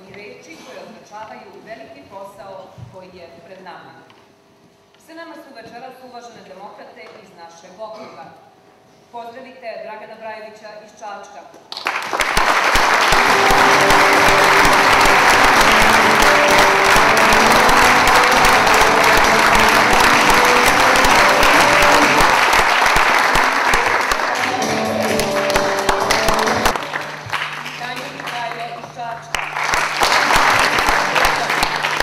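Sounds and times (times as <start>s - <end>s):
audience applause: 11.8s - 28.7s, 29.3s - 32.0s
music playing: 12.8s - 28.2s, 29.6s - 32.0s.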